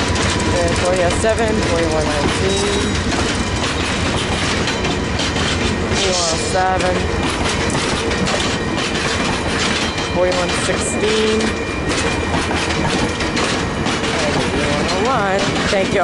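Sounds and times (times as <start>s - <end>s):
train cars rumbling past: 0.0s - 16.0s
wheels clicking over rail joints: 0.0s - 16.0s.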